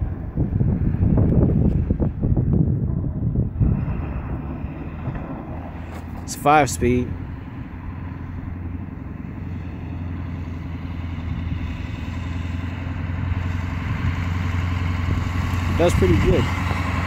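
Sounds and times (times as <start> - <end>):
diesel truck engine running: 0.0 - 17.0
plow pushing snow: 0.0 - 17.0.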